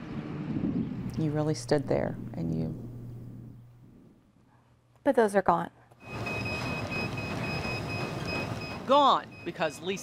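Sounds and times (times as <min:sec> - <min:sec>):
gym machines rumbling: 0:06.0 - 0:10.0.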